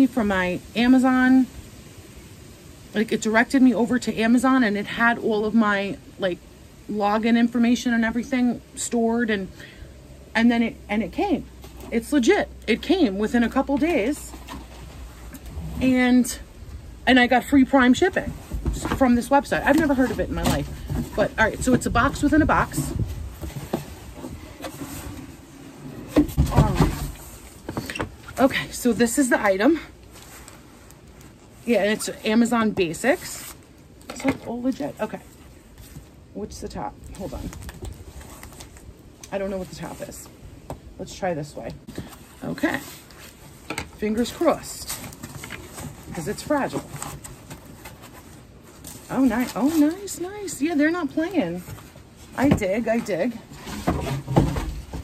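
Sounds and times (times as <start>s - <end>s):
outdoor background noise: 0.0s - 55.0s
cardboard rubbing and scraping: 17.6s - 33.6s, 41.8s - 55.0s.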